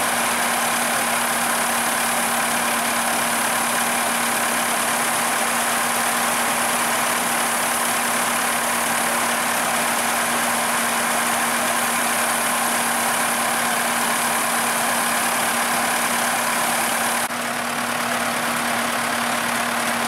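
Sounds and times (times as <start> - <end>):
grain pouring hiss: 0.0 - 17.3
combine harvester humming: 0.0 - 20.0.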